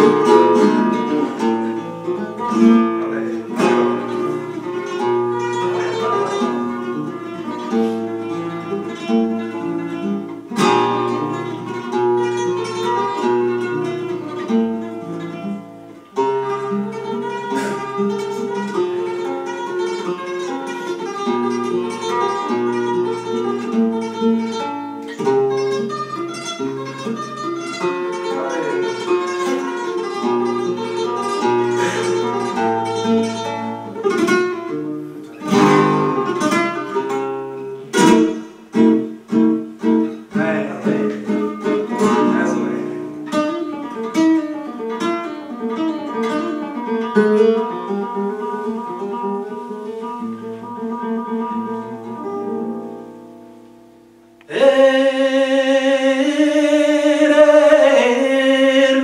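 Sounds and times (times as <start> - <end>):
man singing flamenco: 0.0 - 8.4, 30.2 - 33.4, 40.3 - 43.3, 54.4 - 59.0
flamenco guitar solo: 0.0 - 59.0.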